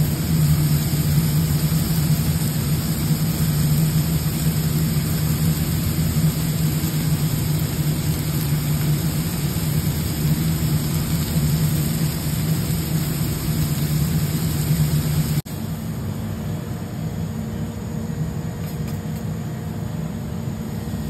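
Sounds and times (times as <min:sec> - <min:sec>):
even hiss: 0:00.0 - 0:15.8
low machine hum: 0:00.0 - 0:21.0.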